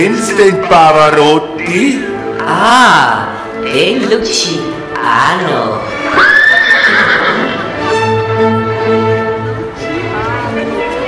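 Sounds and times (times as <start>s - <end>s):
music: 0.0s - 11.0s
horse whinnying: 6.0s - 7.8s.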